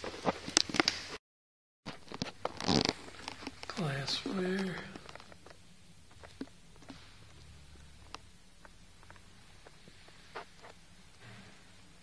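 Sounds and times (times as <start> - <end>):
person speaking: 3.6 - 5.3.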